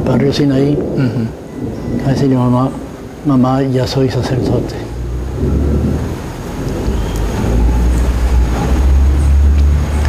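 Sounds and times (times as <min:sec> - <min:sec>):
loud low rumble: 0:00.9 - 0:10.0.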